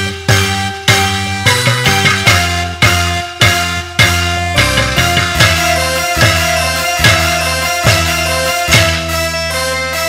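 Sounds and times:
sustained pitched instruments: 0.0s - 10.0s.

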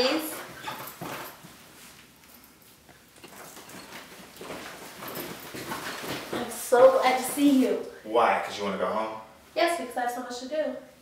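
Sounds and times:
clothes rustling: 0.0s - 8.6s
footsteps on hard floor: 0.1s - 7.5s.

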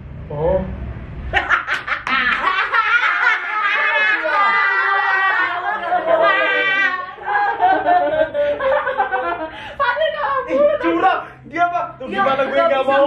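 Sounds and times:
young people laughing: 1.3s - 10.8s.

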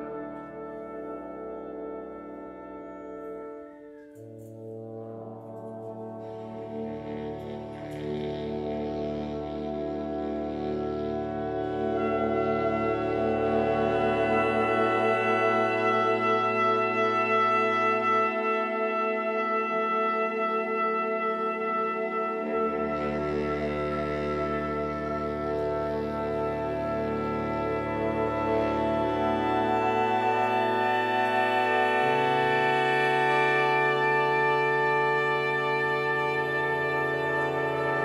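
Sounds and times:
horn section sustained chords: 0.0s - 38.0s.

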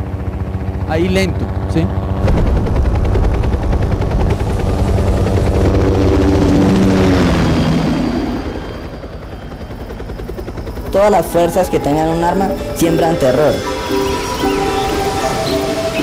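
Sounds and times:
helicopter rotor chopping: 0.0s - 16.0s.

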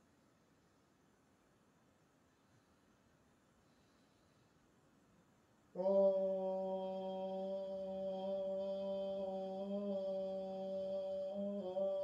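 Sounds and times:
chanted low drone: 5.8s - 12.0s.

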